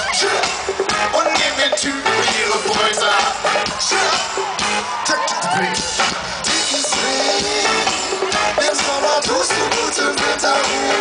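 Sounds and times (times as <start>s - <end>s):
drums: 0.0s - 11.0s
live band playing loud music: 0.0s - 11.0s.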